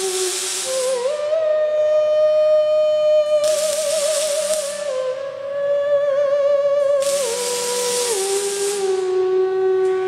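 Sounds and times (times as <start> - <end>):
hiss: 0.0 - 1.6, 3.2 - 5.4, 6.8 - 10.0
theremin playing wavering notes: 0.0 - 10.0.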